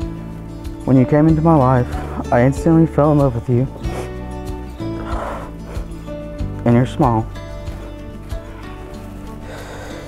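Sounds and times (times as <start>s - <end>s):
soft background music: 0.0s - 10.0s
breathy sound: 1.8s - 2.3s, 3.8s - 6.2s, 8.6s - 10.0s.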